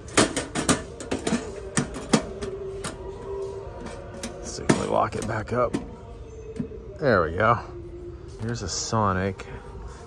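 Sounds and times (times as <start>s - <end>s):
metal box lid shutting and latching: 0.0s - 2.4s.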